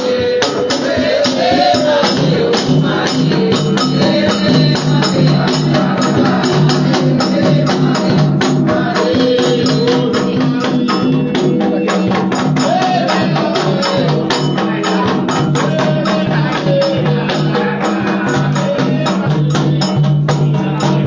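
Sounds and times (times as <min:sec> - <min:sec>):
hand drums: 0:00.0 - 0:21.0
voices singing: 0:00.0 - 0:21.0.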